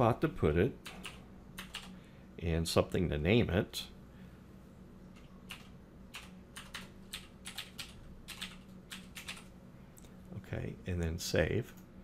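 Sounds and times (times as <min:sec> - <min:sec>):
steady low hum: 0:00.0 - 0:12.0
keyboard keys clicking: 0:05.2 - 0:09.5.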